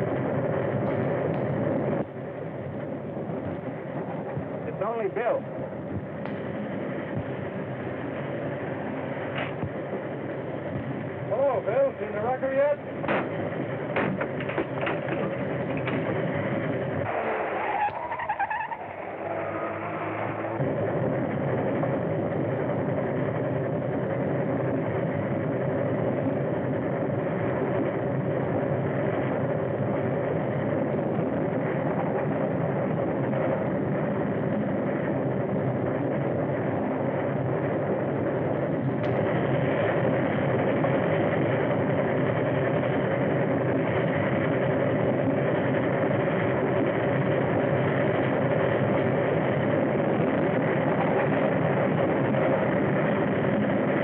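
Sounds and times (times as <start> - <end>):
engine droning: 0.0 - 54.0.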